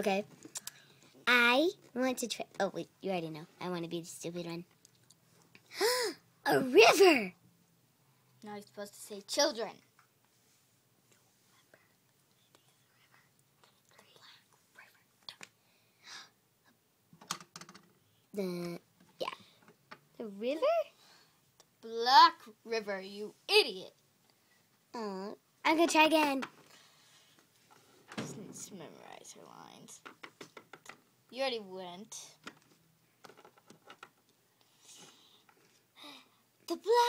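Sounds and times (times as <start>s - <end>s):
faint whispering: 11.1s - 15.5s.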